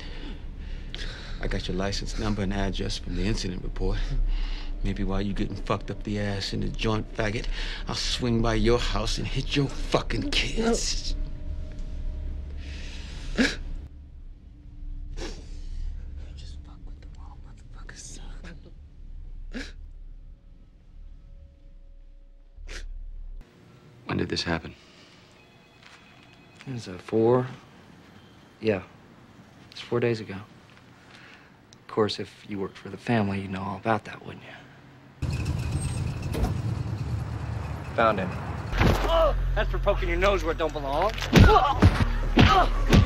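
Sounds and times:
low room hum: 0:00.0 - 0:35.3
man whispering: 0:16.2 - 0:18.8
vehicle engine rumbling: 0:35.2 - 0:41.2.

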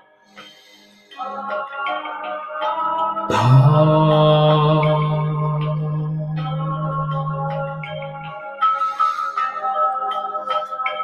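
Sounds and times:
ambient music with bell tones: 0:00.0 - 0:11.0
man chanting low tone: 0:03.3 - 0:08.4.

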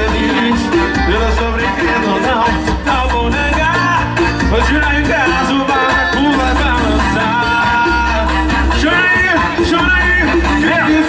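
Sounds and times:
electric guitar: 0:00.0 - 0:11.0
person singing: 0:00.0 - 0:11.0
repeating bass line: 0:00.0 - 0:11.0.

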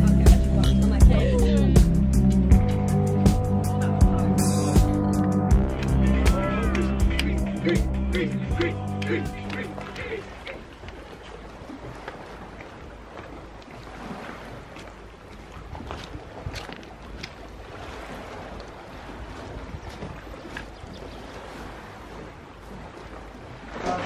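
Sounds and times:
short splashes: 0:04.6 - 0:24.0
water lapping against rocks: 0:04.8 - 0:24.0
wind on microphone: 0:19.0 - 0:22.2.

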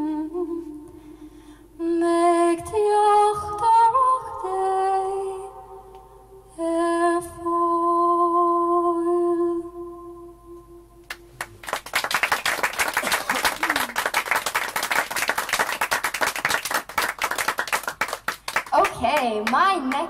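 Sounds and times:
woman singing: 0:01.8 - 0:05.7, 0:06.5 - 0:10.2
audience applause: 0:11.4 - 0:18.9.

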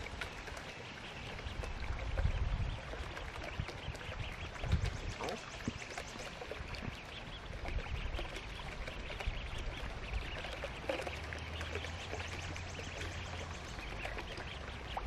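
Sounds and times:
ducklings peeping: 0:00.1 - 0:15.0.

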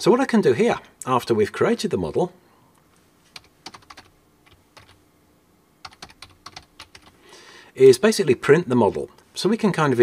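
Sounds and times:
computer keyboard typing: 0:03.3 - 0:05.0, 0:05.8 - 0:07.2.

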